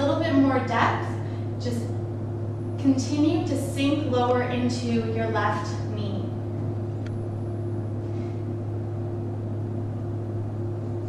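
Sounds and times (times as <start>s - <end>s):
low machinery hum: 0.0s - 11.0s.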